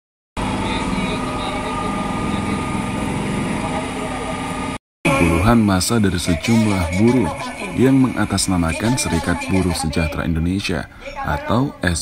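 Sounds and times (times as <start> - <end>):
vehicle engine idling: 0.4 - 4.8
street noise: 0.4 - 12.0.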